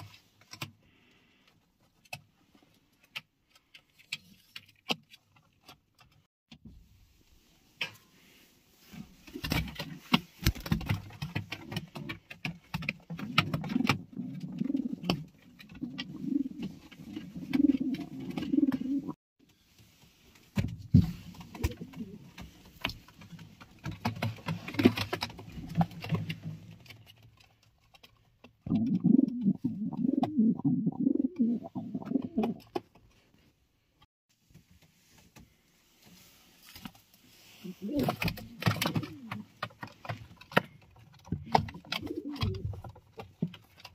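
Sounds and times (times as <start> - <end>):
pigeons cooing: 13.2 - 19.2, 28.7 - 32.6, 37.6 - 39.4, 41.8 - 42.8.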